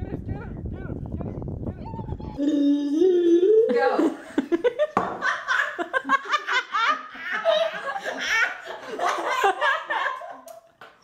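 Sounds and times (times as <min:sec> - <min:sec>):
girls giggling: 0:03.6 - 0:10.7.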